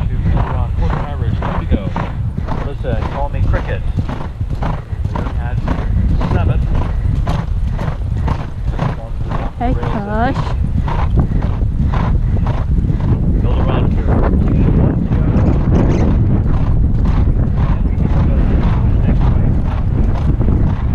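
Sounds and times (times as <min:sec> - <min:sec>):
horse hoofbeats galloping on turf: 0:00.0 - 0:20.9
wind rumble on microphone: 0:00.0 - 0:20.9.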